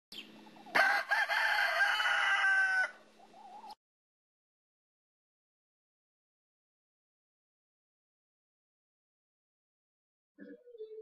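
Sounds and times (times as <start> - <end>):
rooster crowing: 0.7 - 3.1.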